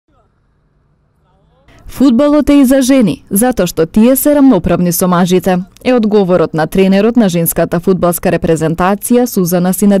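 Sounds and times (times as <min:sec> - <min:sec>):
woman speaking: 0:01.7 - 0:10.0.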